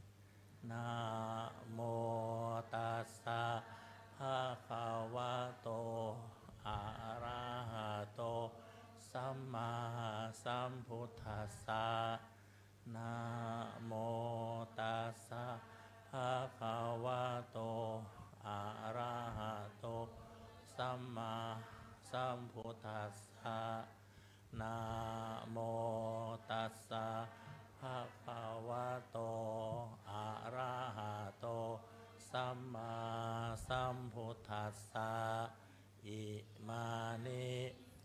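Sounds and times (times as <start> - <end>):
person chanting steadily: 0.0 - 38.0.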